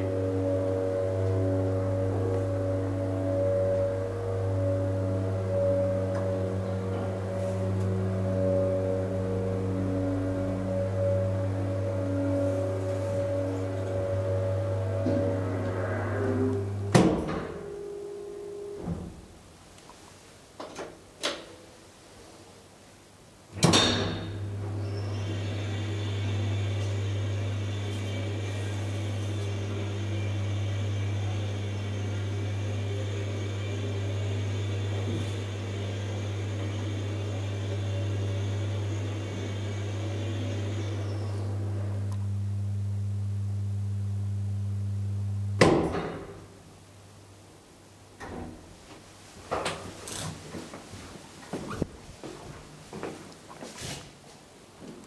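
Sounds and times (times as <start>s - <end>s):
elevator humming: 0.0s - 19.7s, 23.5s - 48.8s
loud bang: 13.7s - 19.2s.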